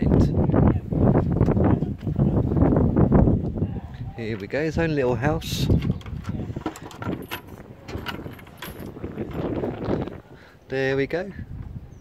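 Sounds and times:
wooden door latch rattling: 5.7 - 9.6.

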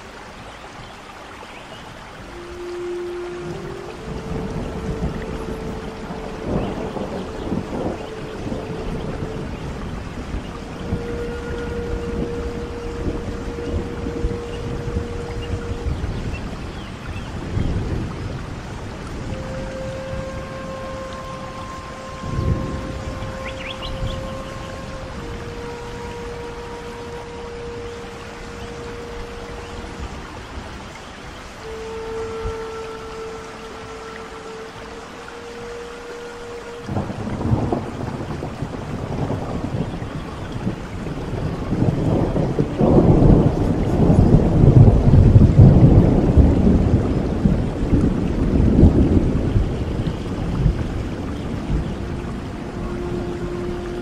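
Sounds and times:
flute playing long notes: 0.0 - 54.0
steady rain: 0.0 - 54.0
thunder rolling: 3.4 - 25.4, 36.8 - 52.8.

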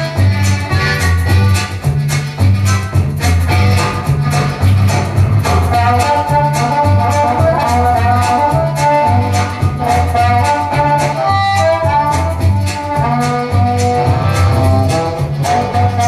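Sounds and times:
amplified harmonica melody: 0.0 - 16.0.

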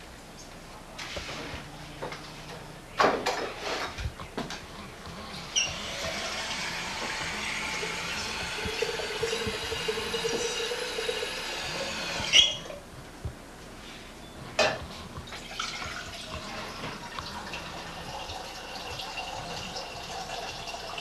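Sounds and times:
faucet running into carafe: 5.7 - 12.6.

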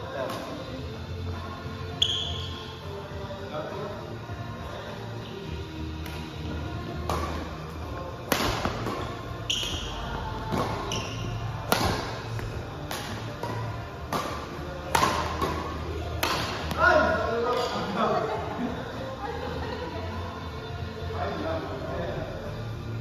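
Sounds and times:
players' voices: 6.6 - 22.9
rackets hitting shuttlecock: 7.0 - 7.5, 8.2 - 9.9, 10.5 - 17.8.

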